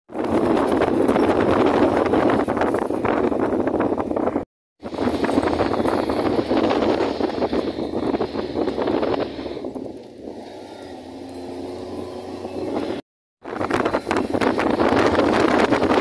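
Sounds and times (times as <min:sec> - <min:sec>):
wind buffeting microphone: 0:00.1 - 0:16.0.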